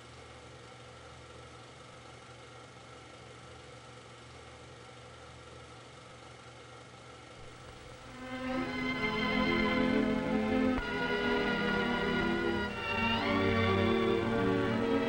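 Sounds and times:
faint low hum with hiss: 0.0 - 15.0.

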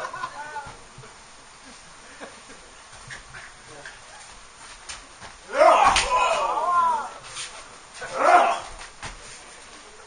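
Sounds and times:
wordless vocal cries: 5.5 - 7.2, 8.0 - 8.7.

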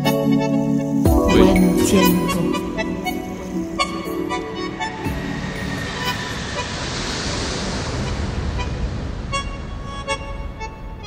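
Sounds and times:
lounge music: 0.0 - 6.4
rush of noise: 2.2 - 11.0.

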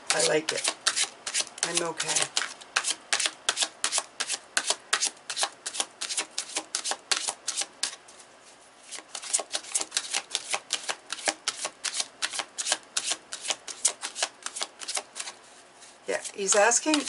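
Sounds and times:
cards being shuffled: 0.1 - 15.6, 16.2 - 17.0.

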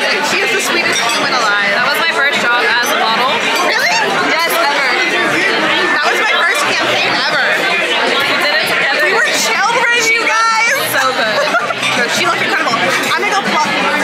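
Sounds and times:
loud chatter of voices: 0.0 - 14.0.

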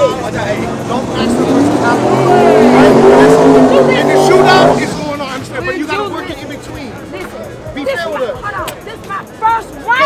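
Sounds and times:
car engine revving high: 0.0 - 5.5.

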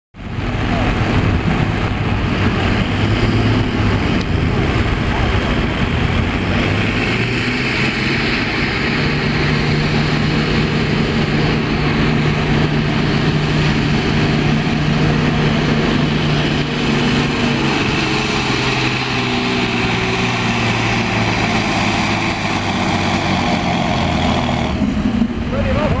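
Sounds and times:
tractor diesel engine under load: 0.2 - 26.0.

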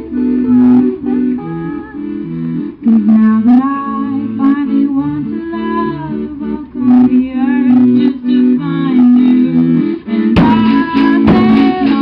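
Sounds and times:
accordion chords: 0.0 - 12.0
guitar: 0.0 - 12.0
drumming: 10.4 - 12.0.

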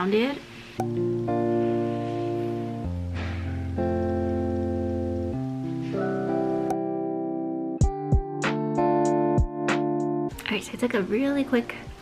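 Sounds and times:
background music sustained chords: 0.8 - 12.0.

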